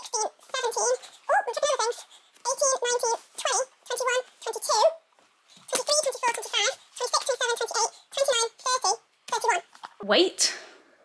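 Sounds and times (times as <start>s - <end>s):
high-pitched voice speaking: 0.0s - 5.0s, 5.7s - 9.7s.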